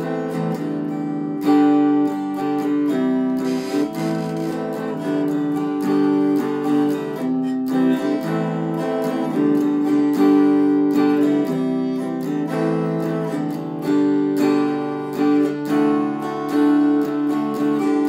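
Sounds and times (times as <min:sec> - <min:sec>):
electric guitar strummed chords: 0:00.0 - 0:18.0.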